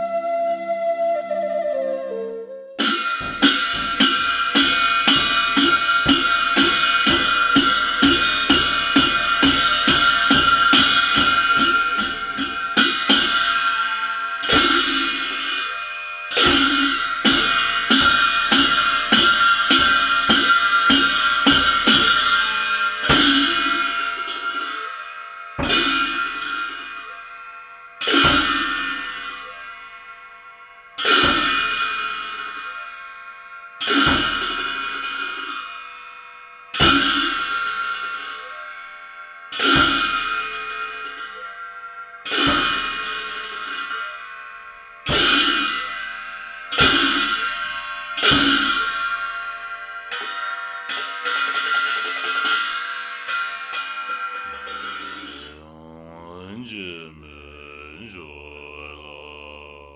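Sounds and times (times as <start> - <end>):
large cymbals crashing: 1.6 - 38.6.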